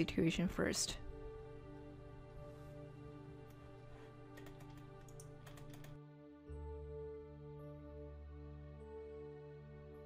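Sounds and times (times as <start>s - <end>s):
faint background music: 0.0s - 10.0s
keyboard key clicks: 4.4s - 6.0s.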